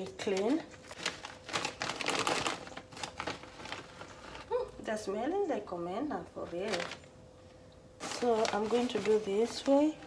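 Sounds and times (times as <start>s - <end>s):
plastic packet crinkling: 0.0s - 4.8s, 6.4s - 7.1s, 8.0s - 10.0s.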